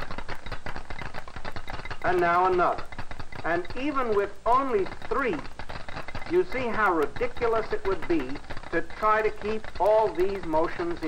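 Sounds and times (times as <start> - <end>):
small balls clicking and rattling: 0.0 - 11.0.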